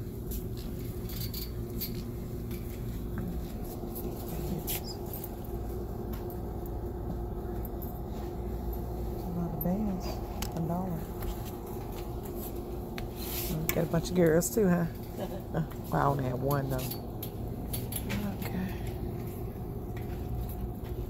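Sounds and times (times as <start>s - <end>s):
steady background hum: 0.0s - 21.0s.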